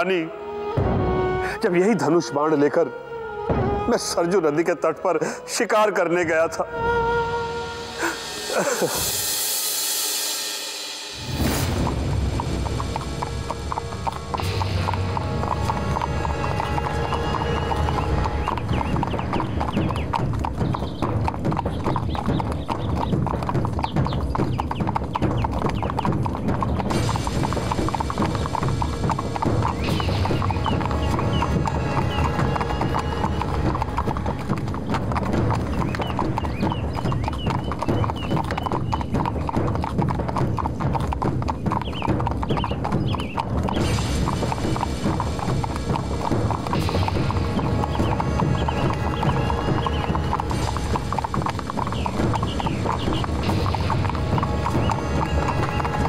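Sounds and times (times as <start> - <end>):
horse hooves clip-clopping: 11.3 - 56.0.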